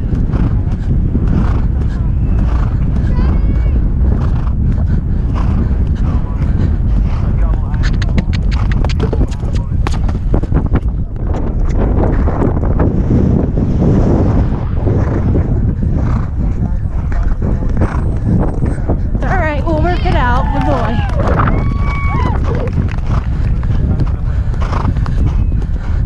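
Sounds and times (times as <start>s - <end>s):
horse hoofbeats galloping: 0.0s - 12.6s, 16.0s - 26.0s
wind rumble on microphone: 0.0s - 26.0s.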